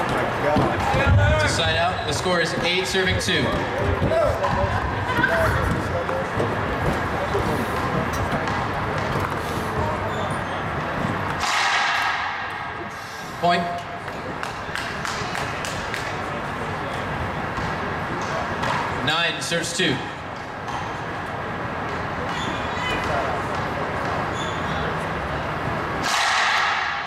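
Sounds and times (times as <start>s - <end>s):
crowd chatter: 0.0s - 27.0s.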